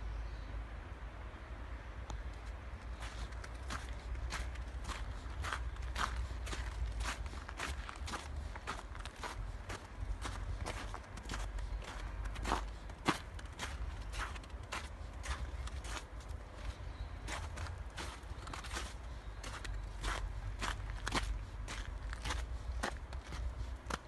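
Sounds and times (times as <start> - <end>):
footsteps crunching in snow: 2.8 - 24.0.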